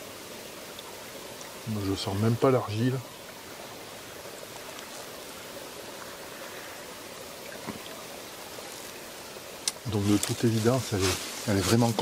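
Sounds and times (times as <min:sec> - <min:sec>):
stream water running: 0:00.0 - 0:12.0.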